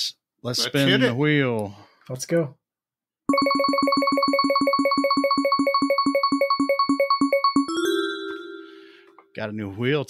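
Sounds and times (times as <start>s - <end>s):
prize wheel ticks: 3.3s - 7.9s
steady high tone: 3.3s - 9.2s.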